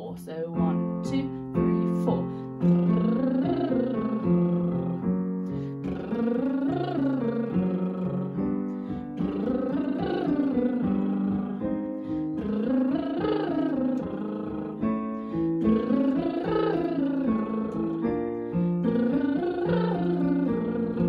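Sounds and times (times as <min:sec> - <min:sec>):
digital piano chords: 0:00.5 - 0:21.0
woman doing lip trills: 0:01.7 - 0:21.0.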